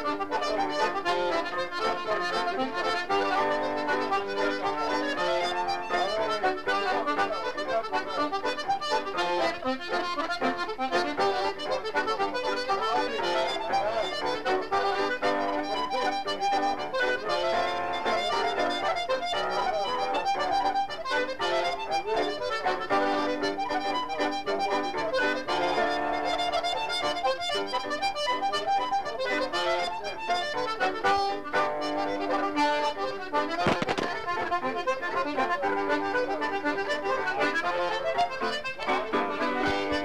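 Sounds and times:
accordion playing a fast reel: 0:00.0 - 0:40.0.

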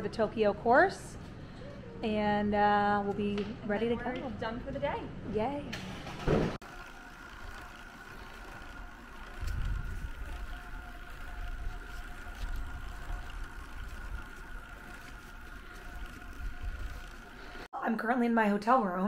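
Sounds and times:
wind buffeting microphone: 0:08.8 - 0:17.6.

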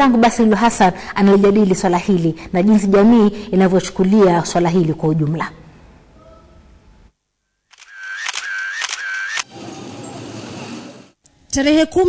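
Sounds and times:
camera shutter clicks: 0:07.7 - 0:09.5.

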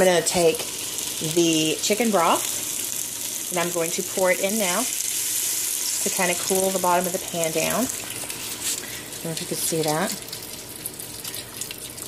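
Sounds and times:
broth pouring into hot pan: 0:00.0 - 0:12.0.

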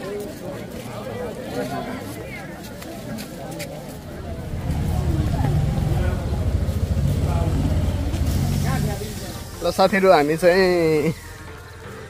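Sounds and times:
faint voices: 0:00.0 - 0:12.0
vehicle engine rumbling: 0:03.8 - 0:10.8.

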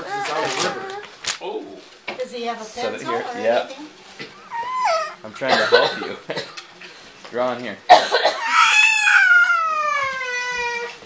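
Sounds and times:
cat meowing: 0:08.5 - 0:11.0.

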